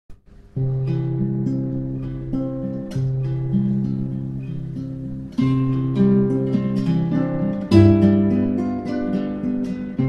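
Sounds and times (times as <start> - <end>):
classical guitar duet: 0.2 - 10.0.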